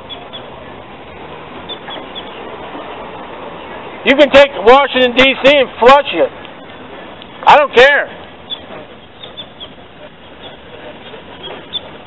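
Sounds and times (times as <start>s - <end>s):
outdoor street background noise: 0.0s - 12.0s.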